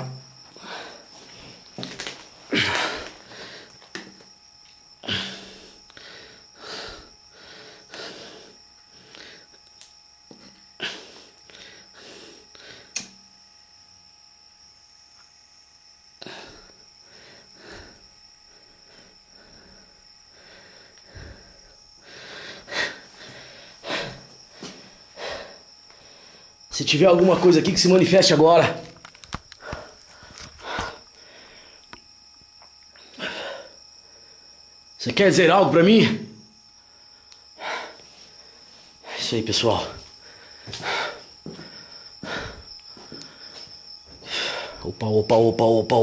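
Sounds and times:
steady high-pitched whine: 0.0 - 46.0.

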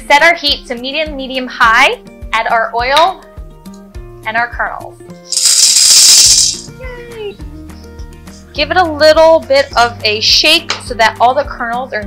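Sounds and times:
background music: 0.0 - 5.4, 6.5 - 12.0
popcorn kernels rattling into metal pot: 5.3 - 6.7.

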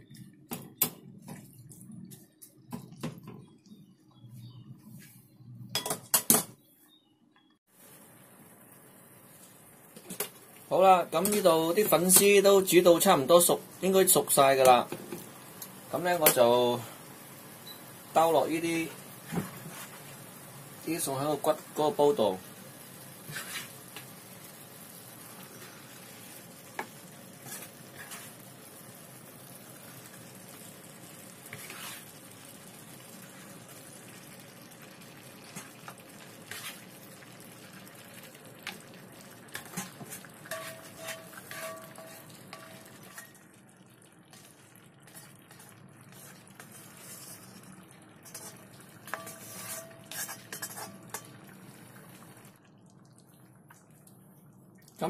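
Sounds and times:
meat sizzling in a wok: 7.7 - 43.6, 44.3 - 52.4
spatula scraping a pan: 23.2 - 24.0, 25.5 - 28.5, 31.4 - 32.2, 35.4 - 37.0, 39.5 - 43.4, 44.3 - 51.3.

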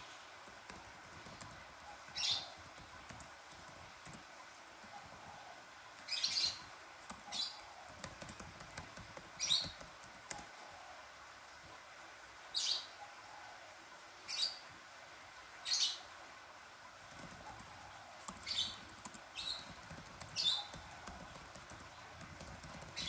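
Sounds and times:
faint background hiss: 0.0 - 23.0
bird chirping: 0.8 - 3.8, 6.0 - 8.4, 9.3 - 10.8, 17.1 - 23.0.

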